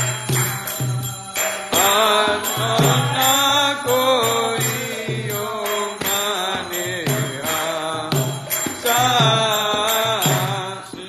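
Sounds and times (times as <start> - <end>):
metallic percussion: 0.0 - 11.0
voices chanting a melody: 0.0 - 11.0.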